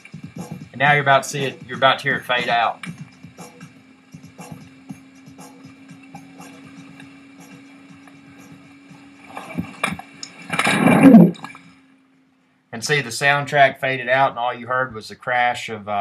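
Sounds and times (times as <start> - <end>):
steady low drone: 0.0 - 15.2
water spray and splashes: 6.2 - 11.8
skier crashing into water: 9.4 - 11.6.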